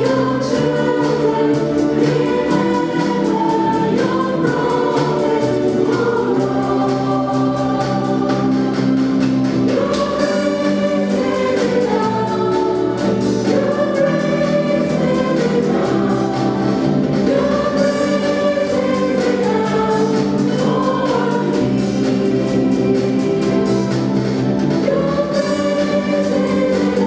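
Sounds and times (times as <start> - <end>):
church choir singing: 0.0 - 27.0
keyboard and small band: 0.0 - 27.0.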